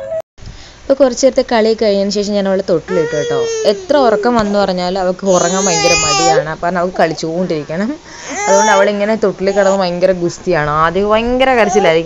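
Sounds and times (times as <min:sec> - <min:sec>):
baby crying: 0:02.9 - 0:04.6, 0:05.2 - 0:10.0, 0:11.5 - 0:12.0.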